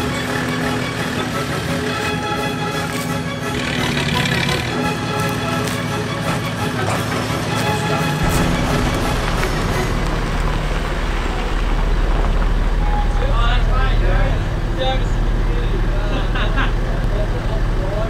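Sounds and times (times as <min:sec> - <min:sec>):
background music: 0:00.0 - 0:16.0
vehicle engine idling: 0:00.0 - 0:18.0
voices talking: 0:05.1 - 0:18.0.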